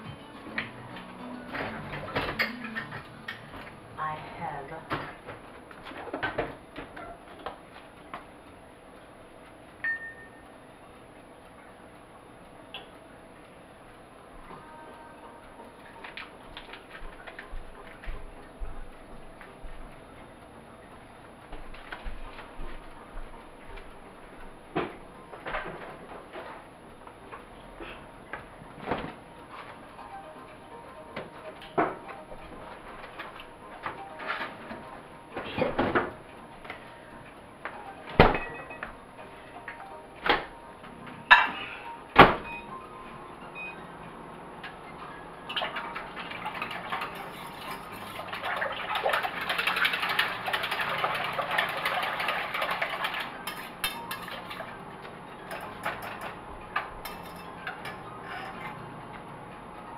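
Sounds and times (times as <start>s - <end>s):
kitchen knocks and clatter: 1.5s - 3.7s, 4.8s - 7.6s, 33.0s - 36.2s, 38.1s - 38.9s, 45.5s - 54.6s, 55.4s - 58.8s
utensil stirring in a pot: 46.2s - 54.7s.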